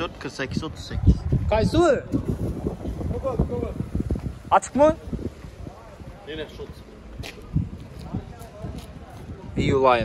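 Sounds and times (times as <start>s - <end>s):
wind buffeting microphone: 0.0s - 10.0s
people talking faintly: 5.0s - 10.0s.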